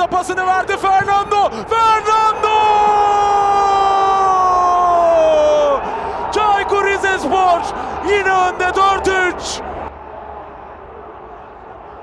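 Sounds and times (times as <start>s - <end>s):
man calling goal: 0.0s - 9.6s.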